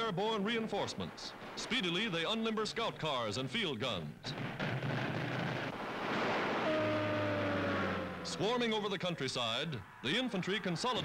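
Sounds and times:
rushing noise: 4.9 - 9.0
aircraft engines droning: 5.7 - 11.0.

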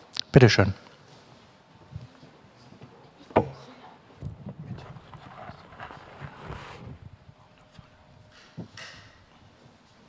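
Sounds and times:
soft knocks and thuds: 3.3 - 3.6.

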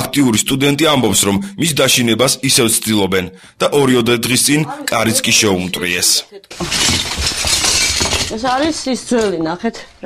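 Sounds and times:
clatter of breaking: 6.5 - 8.9.

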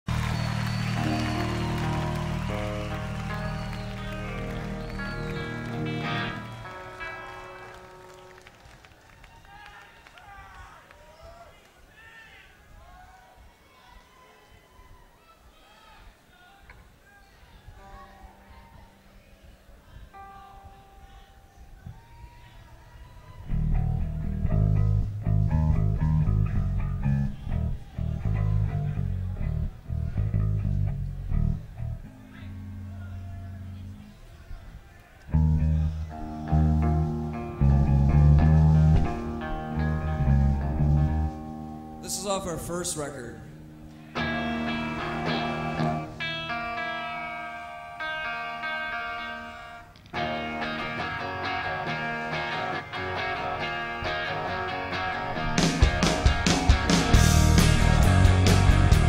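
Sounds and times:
rock band guitar and bass chords: 0.1 - 8.2, 23.5 - 34.0, 35.3 - 42.7, 43.4 - 59.0
faint crowd noise: 0.1 - 59.0.

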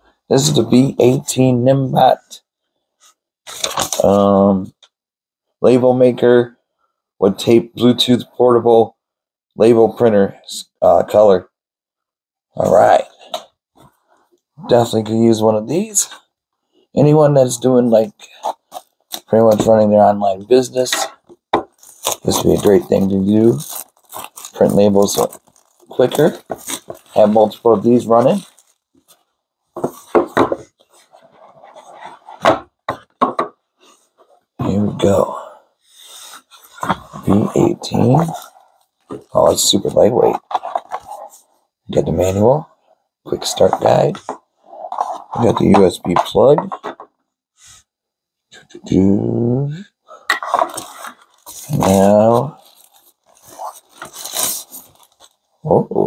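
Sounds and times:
packaging wrap rustling: 21.7 - 30.2, 50.6 - 55.5.

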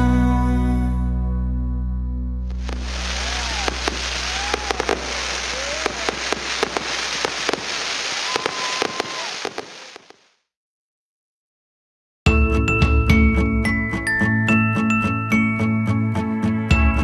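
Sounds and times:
music: 0.0 - 3.7, 12.3 - 17.0
fireworks sparks hissing: 2.5 - 10.3
fireworks popping and crackling: 2.5 - 10.4.

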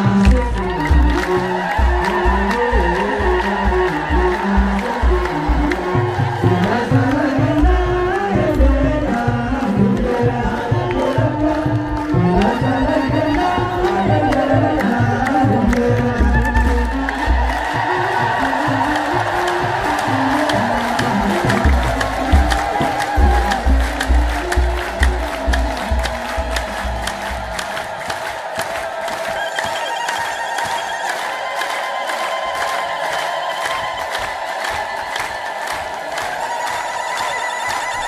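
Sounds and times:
steady drum beat: 0.0 - 37.1
crowd singing a hymn: 0.0 - 38.0
rhythmic hand clapping: 0.0 - 38.0.

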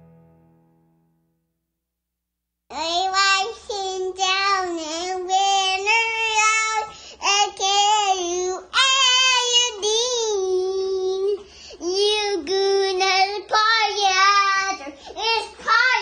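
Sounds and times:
toddler girl singing: 2.7 - 16.0.

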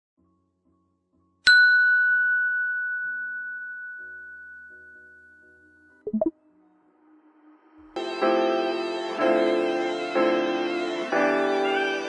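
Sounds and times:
bell-like ding: 1.5 - 6.3.

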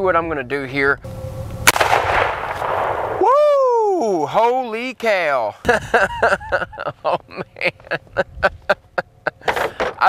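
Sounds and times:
rifle shot with rolling echo: 1.6 - 3.3.

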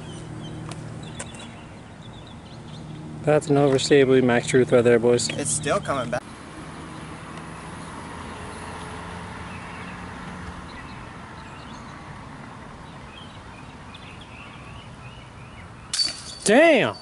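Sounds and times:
distant road traffic: 0.0 - 17.0.

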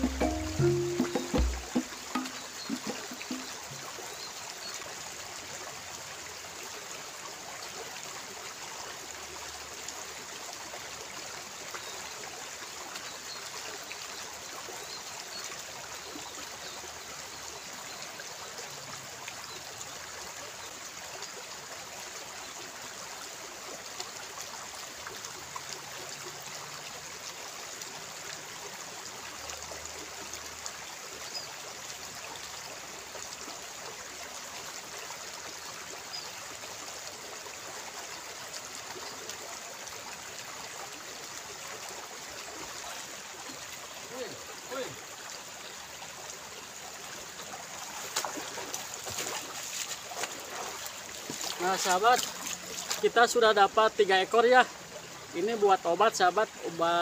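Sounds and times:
stream running over rocks: 0.0 - 57.0.

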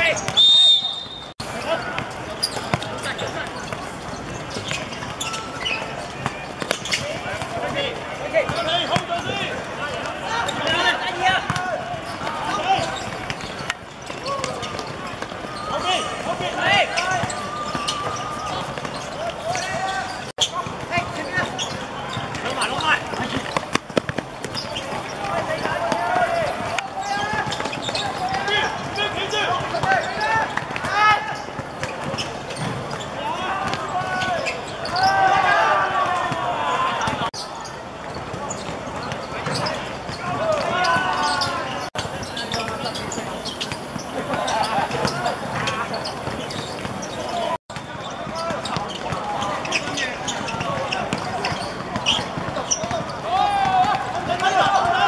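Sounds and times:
players calling out: 0.0 - 55.0.

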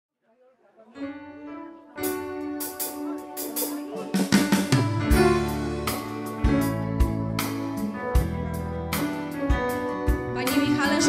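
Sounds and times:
electronic keyboard chord: 1.0 - 11.0.

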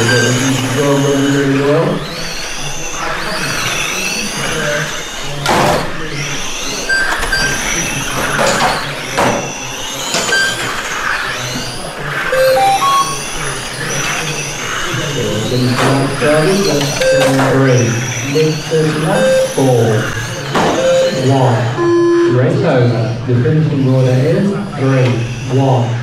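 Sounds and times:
electric model car motors whining: 0.0 - 12.4, 13.0 - 21.8, 22.6 - 26.0
short electronic beeps: 12.3 - 13.4, 17.0 - 17.6, 19.1 - 19.6, 20.7 - 22.4.

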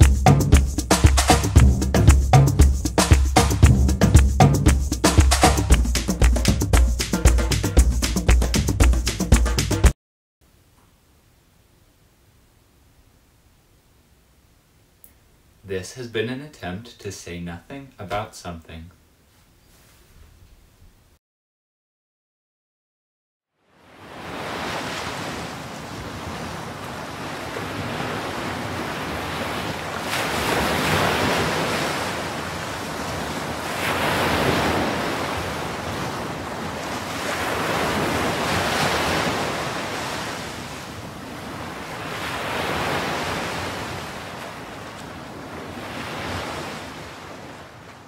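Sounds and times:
ocean waves breaking: 0.0 - 6.4, 23.7 - 48.0.

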